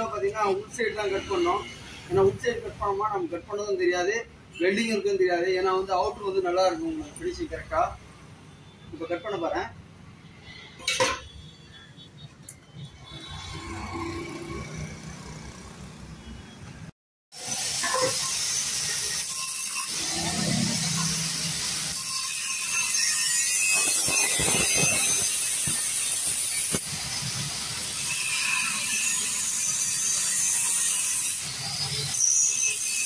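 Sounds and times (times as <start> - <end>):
angle grinder cutting metal: 17.4 - 33.0.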